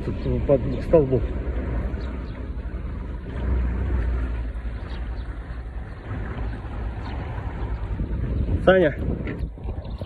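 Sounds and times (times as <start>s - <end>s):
small boat engine rumble: 0.0s - 10.0s.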